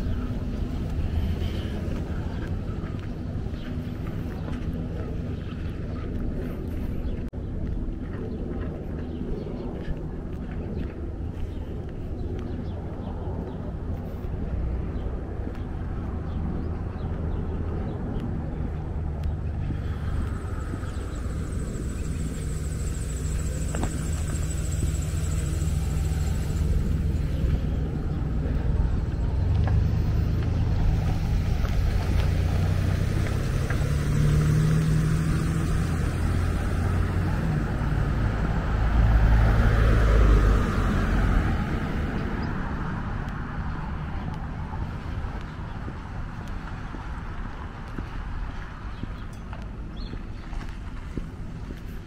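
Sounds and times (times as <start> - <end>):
wind rumble on microphone: 0.0 - 52.0
car passing: 18.6 - 48.4.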